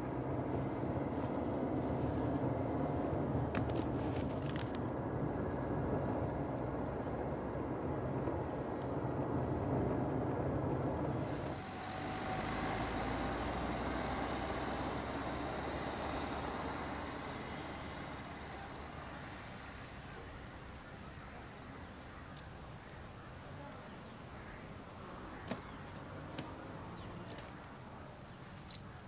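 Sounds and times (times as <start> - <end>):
car road and engine rumble: 0.0 - 29.0
tyre hiss: 11.2 - 22.9.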